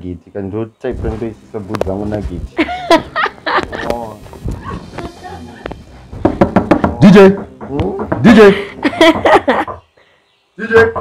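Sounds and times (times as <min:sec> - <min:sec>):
voices: 0:00.0 - 0:05.8
woman laughing loudly: 0:02.6 - 0:03.9, 0:08.5 - 0:09.8.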